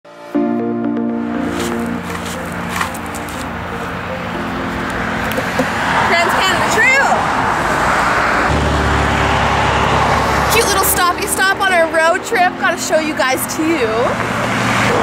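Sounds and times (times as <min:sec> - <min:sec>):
highway traffic rushing: 0:01.2 - 0:15.0
passing vehicle low rumble: 0:01.5 - 0:15.0
voices: 0:06.0 - 0:07.7, 0:10.4 - 0:14.2.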